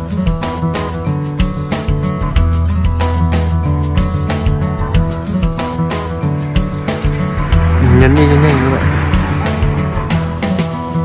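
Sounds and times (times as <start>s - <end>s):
background music: 4.2s - 11.0s.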